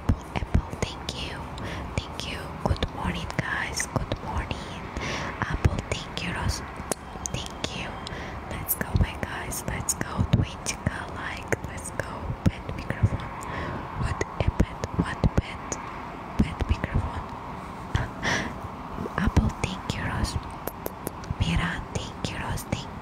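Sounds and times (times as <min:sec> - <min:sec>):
woman whispering: 0:00.0 - 0:06.7, 0:07.3 - 0:15.8, 0:16.4 - 0:17.3, 0:17.9 - 0:23.0
wet lip and tongue clicks: 0:20.4 - 0:21.4.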